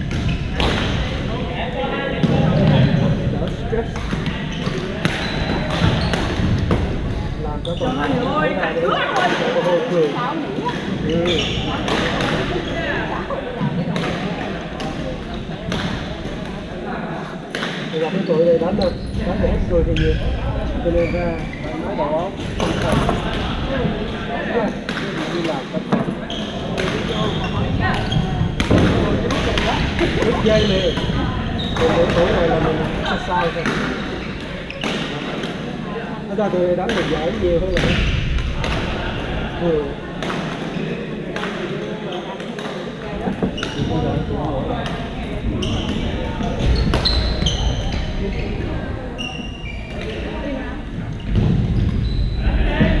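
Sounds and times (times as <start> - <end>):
voices chattering: 0.0 - 53.0
shoes squeaking on court floor: 2.5 - 6.9, 10.6 - 14.1, 17.9 - 23.4, 25.3 - 35.2, 40.7 - 52.9.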